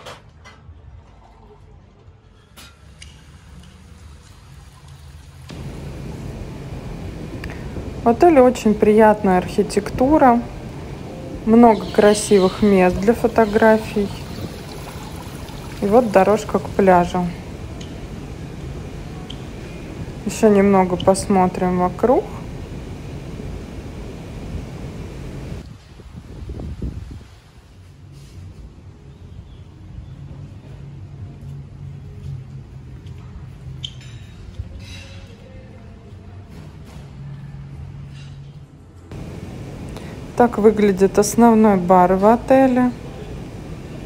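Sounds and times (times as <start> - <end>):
even hiss: 2.6 - 25.7, 39.1 - 44.0
low rumble: 5.5 - 11.7
wind buffeting microphone: 5.5 - 27.8.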